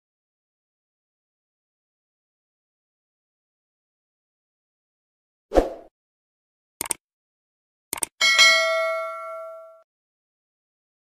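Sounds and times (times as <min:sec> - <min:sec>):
double mouse click: 0:06.8 - 0:07.0, 0:07.9 - 0:08.1
notification bell ding: 0:08.2 - 0:09.8.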